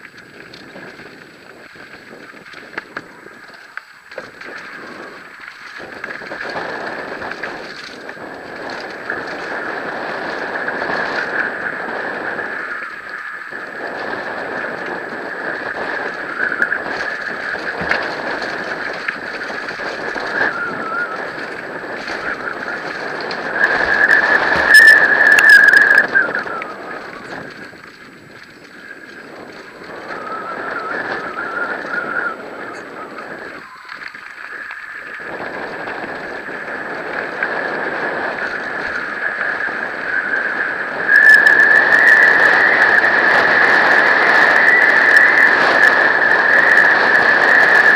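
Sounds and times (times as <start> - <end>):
bike tyres on dirt trail: 0.0 - 47.9
high whine: 0.0 - 47.9
wind: 0.0 - 47.9.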